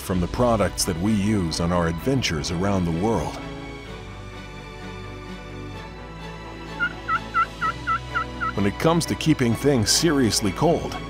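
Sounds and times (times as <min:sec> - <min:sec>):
faint background music: 0:00.0 - 0:11.0
turkey call short notes: 0:06.8 - 0:08.6.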